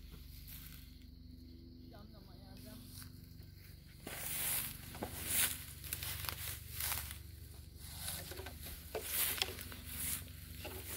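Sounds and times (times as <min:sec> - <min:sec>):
rustling in dry grass: 0:00.0 - 0:10.9.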